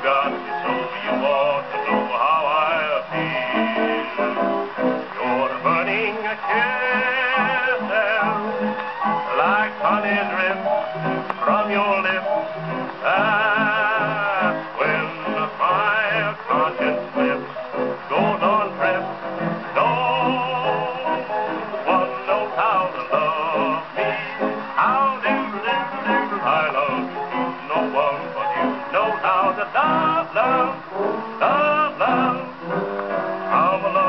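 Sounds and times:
man singing on gramophone record: 0.0 - 34.0.

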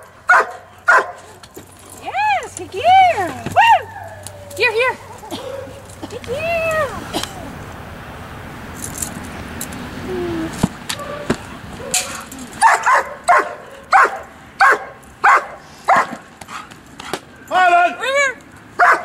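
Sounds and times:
dog barking: 0.3 - 1.4, 5.3 - 5.9, 11.0 - 16.2, 18.8 - 19.0.

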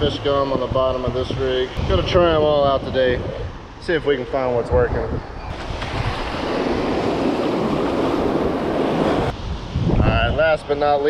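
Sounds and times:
wind buffeting microphone: 0.0 - 11.0
small surf waves breaking: 5.5 - 9.8.

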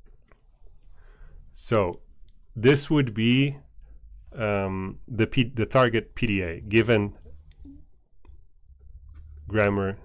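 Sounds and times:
low room hum: 0.0 - 10.0
person speaking: 1.6 - 7.9.

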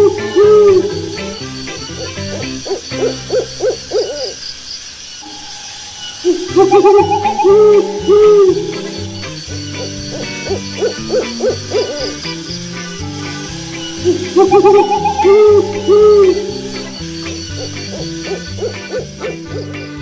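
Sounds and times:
soft background music: 0.0 - 3.8, 6.2 - 20.0
owl hooting: 0.0 - 20.0.

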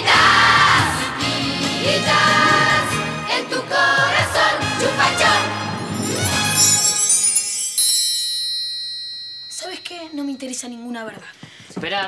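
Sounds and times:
children singing pop song: 0.0 - 5.8
backing band: 0.0 - 7.6.

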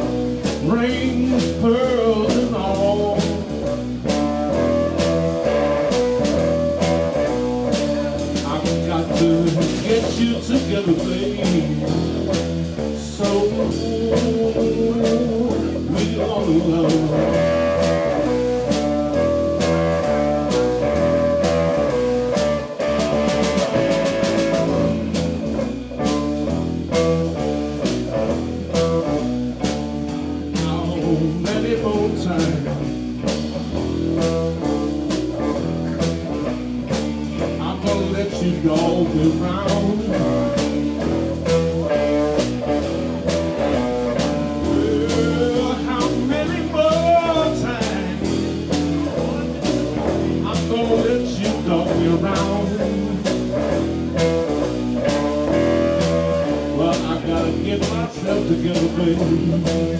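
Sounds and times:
drum kit beat: 0.0 - 59.9
live blues rock band: 0.0 - 59.9.

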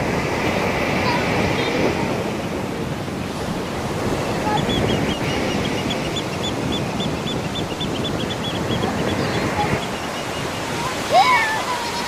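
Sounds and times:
sea surf breaking on beach: 0.0 - 12.0.

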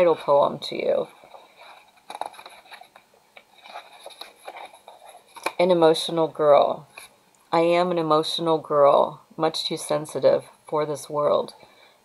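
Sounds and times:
book pages rustling and turning: 1.0 - 5.8, 6.9 - 7.2.

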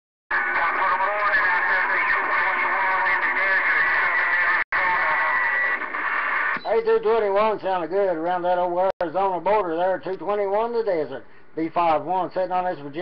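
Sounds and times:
radio static: 0.3 - 7.4
garbled radio voice: 0.3 - 8.9.

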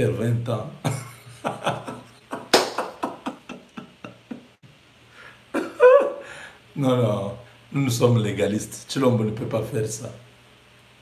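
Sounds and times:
man laughing heartily: 0.8 - 4.6, 5.5 - 6.3.

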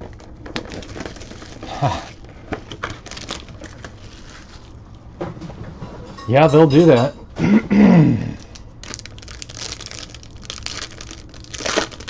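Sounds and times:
plastic wrap crinkling and tearing: 0.0 - 4.8, 8.5 - 12.0.

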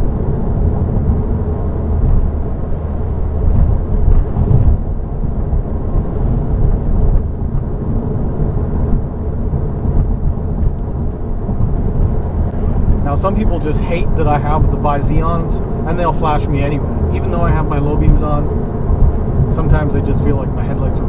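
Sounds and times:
road and tyre noise in car cabin: 0.0 - 21.0.

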